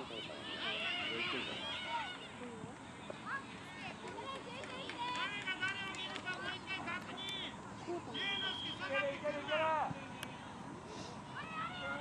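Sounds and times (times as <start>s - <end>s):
children shouting and calling out: 0.0s - 5.7s, 11.3s - 12.0s.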